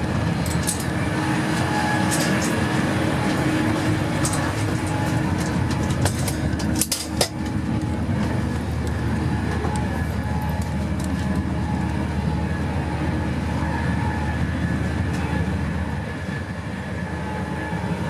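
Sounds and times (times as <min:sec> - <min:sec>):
electric train rumbling at speed: 0:00.0 - 0:18.0.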